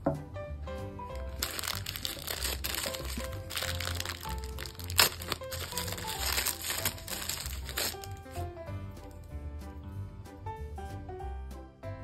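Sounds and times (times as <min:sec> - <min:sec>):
silent-film-style background music: 0:00.0 - 0:12.0
sharp plastic crackle: 0:01.1 - 0:08.4
plastic bag crinkling: 0:01.2 - 0:08.4.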